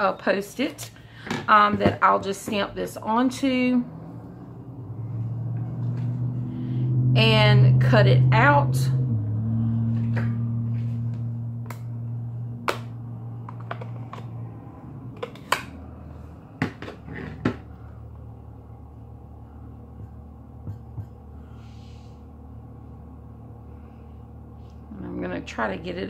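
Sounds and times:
low steady hum: 0.0s - 26.0s.

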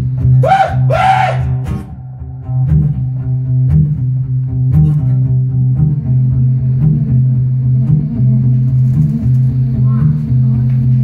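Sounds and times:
acoustic guitar droning riff: 0.0s - 11.0s.

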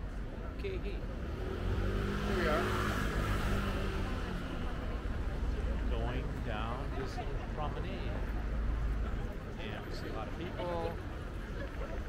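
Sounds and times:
crowd of pedestrians: 0.0s - 12.0s
distant traffic: 0.0s - 12.0s.

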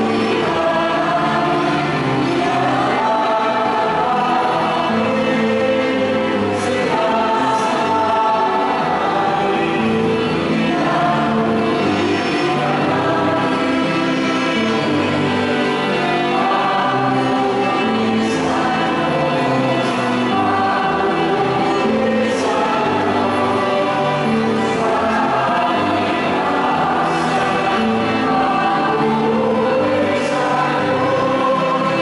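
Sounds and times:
choir singing a hymn: 0.0s - 32.0s.

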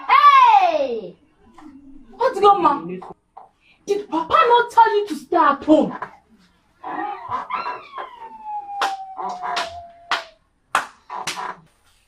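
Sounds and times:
high voice crying out: 6.8s - 10.4s.

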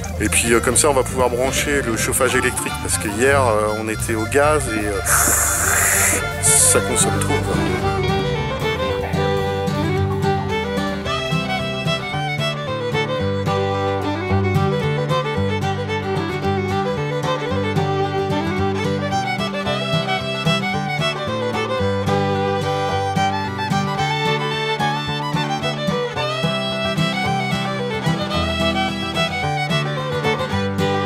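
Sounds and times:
fiddle tune with guitar and bass: 0.0s - 31.0s.

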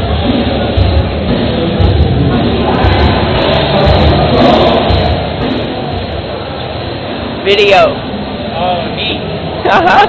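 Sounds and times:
amplified music with bass beat: 0.0s - 7.0s
crowd noise: 0.0s - 10.0s.

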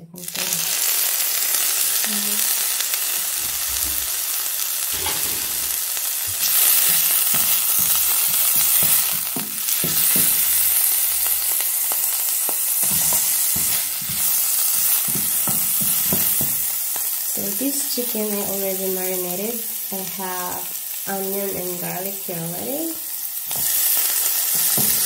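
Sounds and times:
food sizzling in hot oil: 0.0s - 25.0s
wooden spatula scraping a pan: 5.0s - 9.1s.

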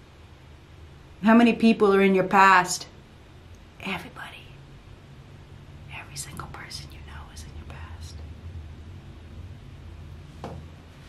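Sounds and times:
low electrical hum: 0.0s - 11.0s
woman whispering: 3.8s - 4.6s, 5.9s - 8.2s.

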